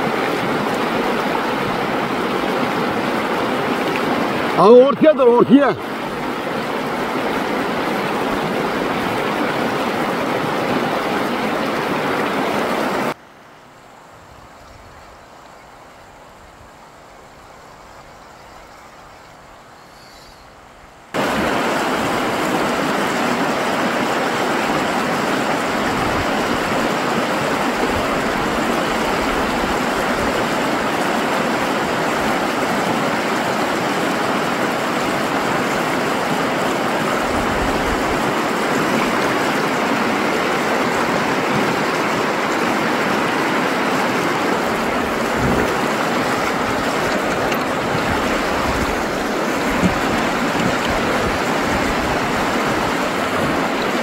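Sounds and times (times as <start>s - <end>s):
river rapids rushing: 0.0s - 14.4s, 15.2s - 54.0s.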